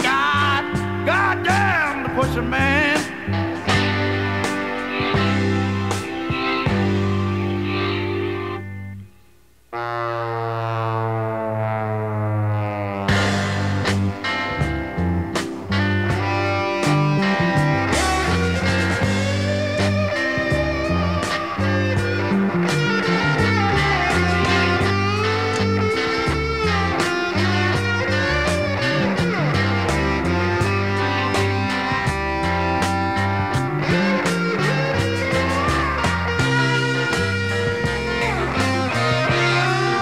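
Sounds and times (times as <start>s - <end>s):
bass line: 0.0s - 9.2s, 9.8s - 40.0s
drums: 0.0s - 9.7s, 13.0s - 40.0s
electric guitar lead: 0.0s - 40.0s.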